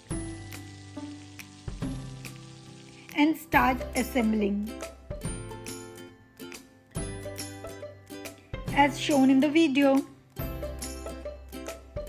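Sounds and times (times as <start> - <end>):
butter sizzling in pan: 0.0 - 6.0
background music: 0.0 - 12.0.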